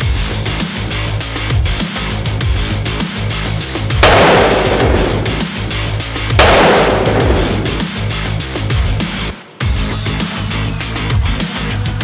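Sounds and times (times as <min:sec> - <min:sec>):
pistol shots booming: 0:04.0 - 0:08.2.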